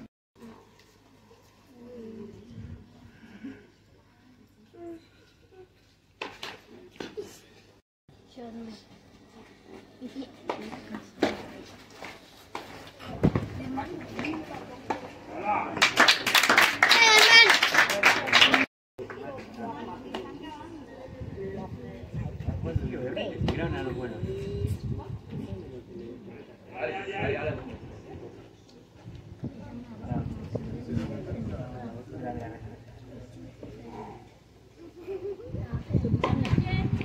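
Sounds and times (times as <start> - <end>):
faint crowd: 8.3 - 37.0
children clapping: 15.8 - 19.2
child calling out: 16.9 - 17.6.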